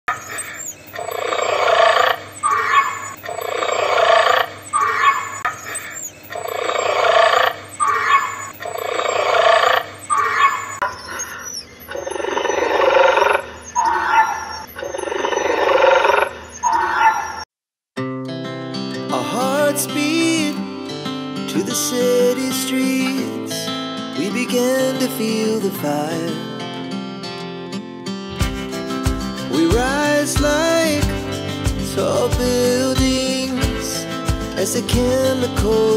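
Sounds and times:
dinosaur roar: 6.4 - 10.6.

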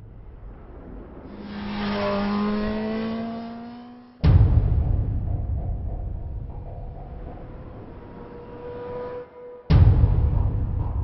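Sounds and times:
motorcycle engine revving: 1.3 - 4.4, 6.6 - 9.8.

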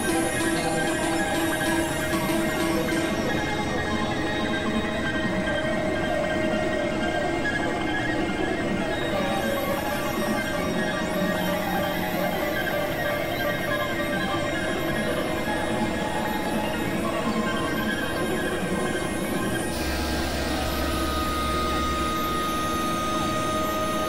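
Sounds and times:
layered synthesizer drone: 0.0 - 24.0.

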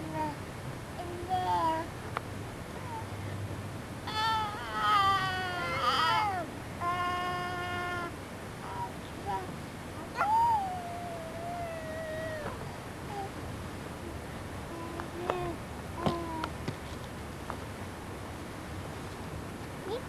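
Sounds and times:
infant squealing: 4.1 - 8.1.

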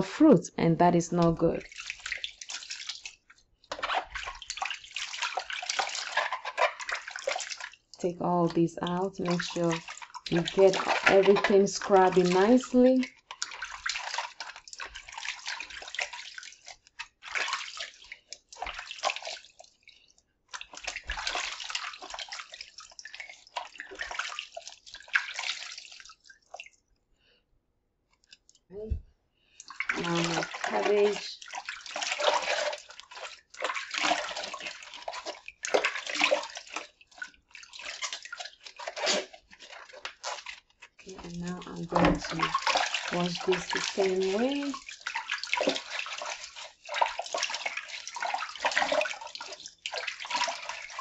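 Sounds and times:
water splashing in a basin: 1.1 - 27.0, 28.3 - 51.0.

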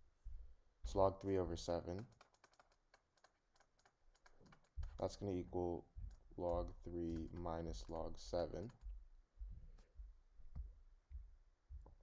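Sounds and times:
stylus tapping on tablet: 2.0 - 12.0.

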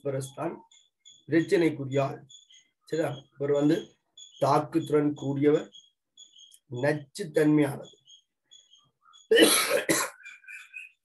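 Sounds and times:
man coughing: 9.3 - 10.6.

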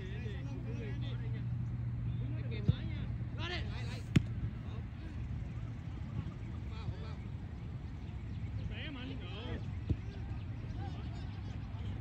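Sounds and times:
soccer ball kick thuds: 3.9 - 4.6.

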